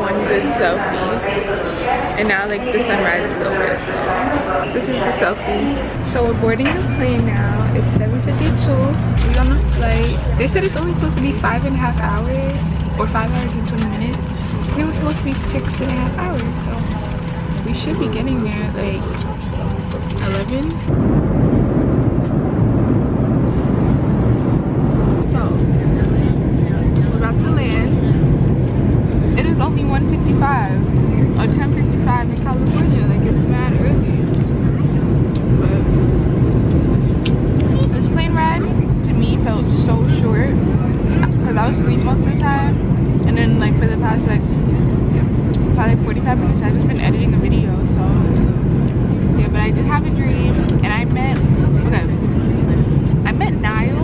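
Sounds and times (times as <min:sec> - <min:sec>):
people talking quietly: 0:00.0 - 0:21.0
jet cabin low rumble: 0:00.0 - 0:54.0.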